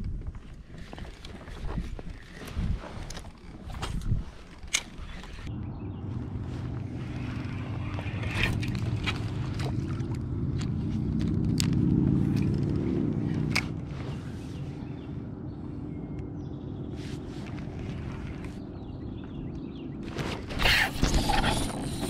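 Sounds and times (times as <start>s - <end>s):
boat motor humming: 5.6s - 13.6s.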